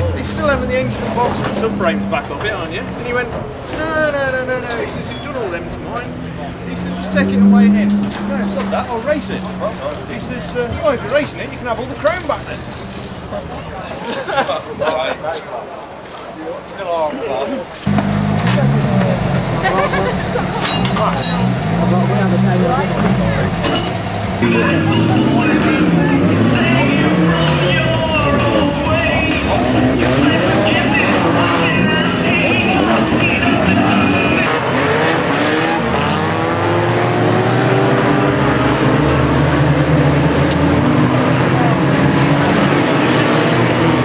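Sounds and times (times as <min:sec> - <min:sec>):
racing car engines revving: 0:00.0 - 0:14.8, 0:17.6 - 0:44.0
faint voices: 0:00.0 - 0:36.0
vehicle engine idling: 0:17.9 - 0:34.6.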